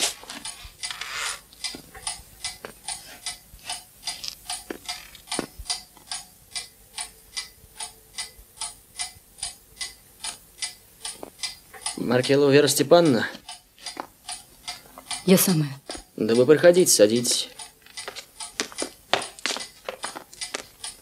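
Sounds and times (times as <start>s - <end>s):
mechanical clock ticking: 0.0s - 21.0s.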